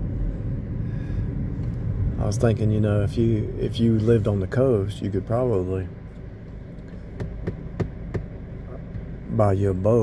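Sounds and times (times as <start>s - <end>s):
car cabin hum: 0.0s - 10.0s
fingers tapping on plastic dashboard: 7.1s - 8.4s.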